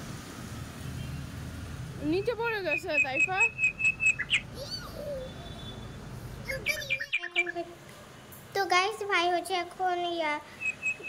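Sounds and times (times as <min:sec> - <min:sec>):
street noise hum: 0:00.0 - 0:11.0
small birds chirping: 0:02.1 - 0:07.7, 0:10.5 - 0:11.0.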